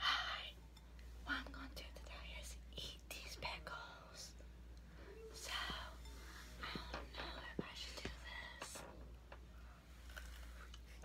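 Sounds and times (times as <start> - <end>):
woman whispering: 1.2 - 4.4, 5.1 - 9.0.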